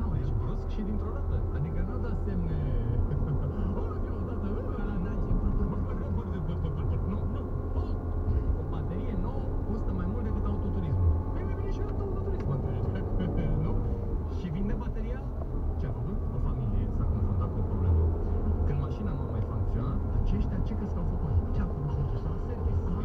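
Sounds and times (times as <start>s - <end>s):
car driving rumble: 0.0s - 23.0s.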